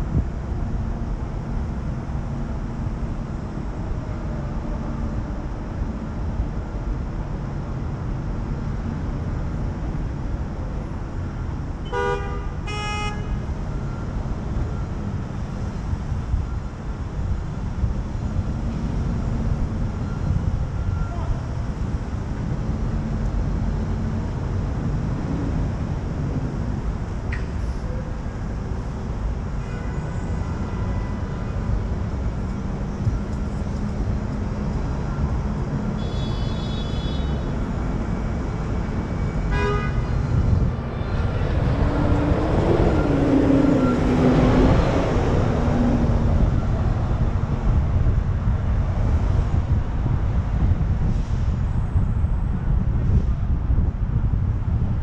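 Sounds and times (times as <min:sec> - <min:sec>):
street traffic rumble: 0:00.0 - 0:55.0
car horn honking: 0:11.9 - 0:13.4, 0:36.0 - 0:37.5, 0:39.5 - 0:40.1.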